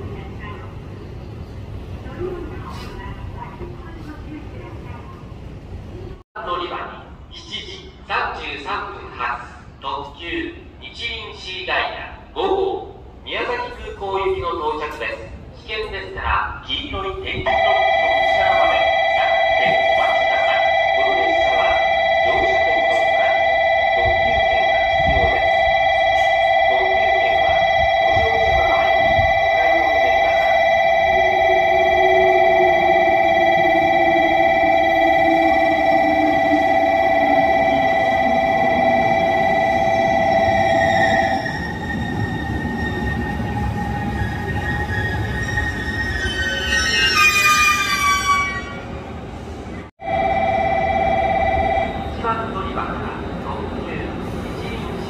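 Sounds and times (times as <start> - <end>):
electric train humming: 17.4 - 55.0
two-tone electronic warning: 17.5 - 47.2, 50.0 - 52.5
train brakes squealing: 32.8 - 49.0.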